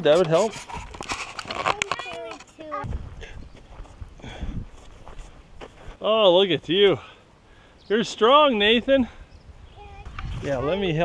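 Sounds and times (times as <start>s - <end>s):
soft low thumps: 2.8s - 4.8s
child's wordless vocal sounds: 9.7s - 10.4s.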